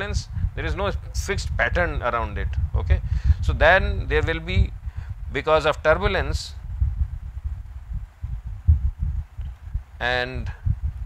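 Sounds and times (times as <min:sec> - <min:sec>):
low rumbling thumps: 0:00.0 - 0:11.0.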